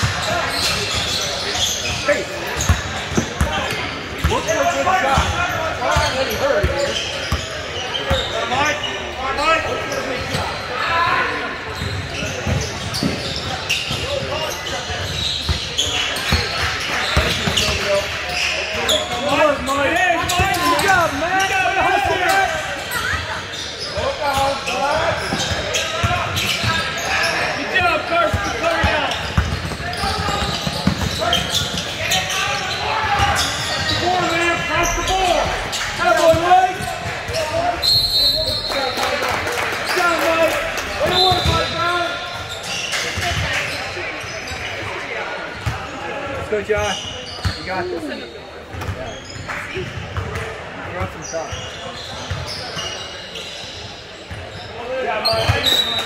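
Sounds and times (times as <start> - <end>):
voices shouting and chattering: 0.0 - 56.0
referee's whistle: 37.8 - 39.0, 41.0 - 41.8, 55.2 - 56.0.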